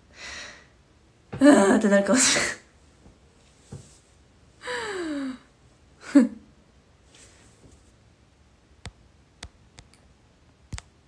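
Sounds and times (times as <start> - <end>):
quiet sharp clicks: 8.8 - 10.1, 10.7 - 11.0.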